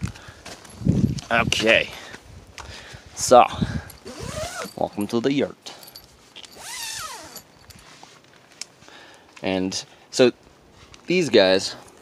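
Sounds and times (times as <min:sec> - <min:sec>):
tent zipper rasp: 0:04.0 - 0:04.8, 0:06.5 - 0:07.5.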